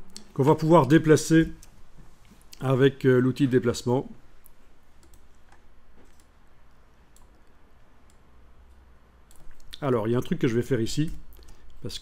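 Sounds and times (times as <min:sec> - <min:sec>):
computer mouse clicks: 0:05.0 - 0:06.4, 0:07.1 - 0:09.8.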